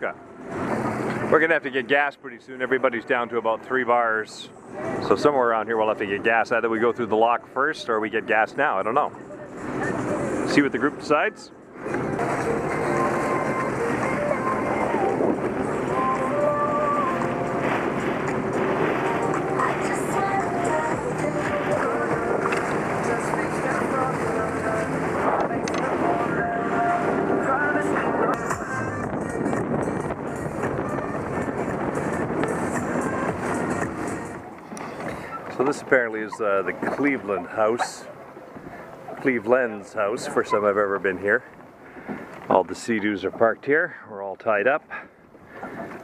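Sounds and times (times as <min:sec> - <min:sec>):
personal watercraft engine: 0:00.0 - 0:46.0
wind on microphone: 0:11.7 - 0:42.5.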